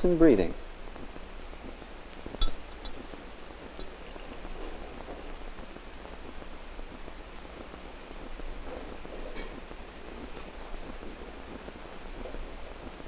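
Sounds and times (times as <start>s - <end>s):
old film soundtrack hum and hiss: 0.0s - 13.0s
faint ticks and rustling: 0.2s - 13.0s
glass clink: 2.4s - 3.0s.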